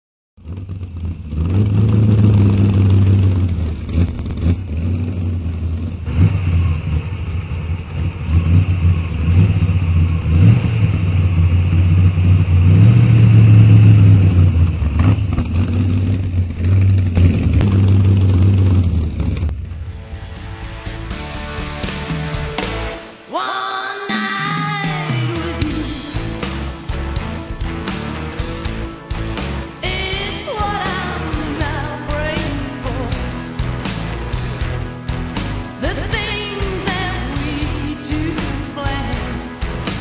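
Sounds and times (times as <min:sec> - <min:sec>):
car engine revving: 0:00.4 - 0:23.2, 0:25.1 - 0:40.0.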